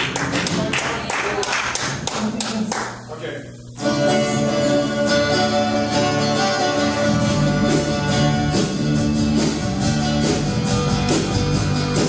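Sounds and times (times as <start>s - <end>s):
hands clapping: 0.0s - 3.1s.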